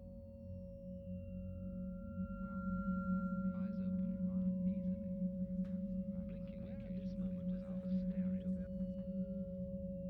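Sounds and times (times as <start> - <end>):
sine oscillator drone: 0.0 - 10.0
low hum: 1.1 - 10.0
recorded voice fragments: 6.1 - 9.1.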